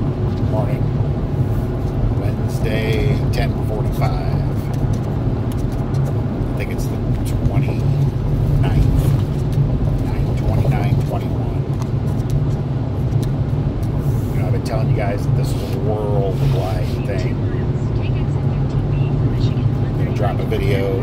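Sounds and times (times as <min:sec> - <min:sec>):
vehicle cabin engine drone: 0:00.0 - 0:21.0.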